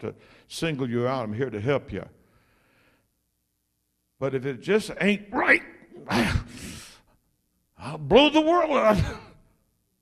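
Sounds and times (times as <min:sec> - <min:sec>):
man gasping: 0:06.1 - 0:07.2.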